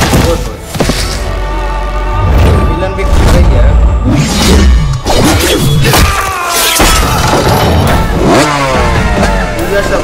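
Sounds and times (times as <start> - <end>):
background music: 0.0 - 10.0
motorcycle engine revving: 7.6 - 10.0.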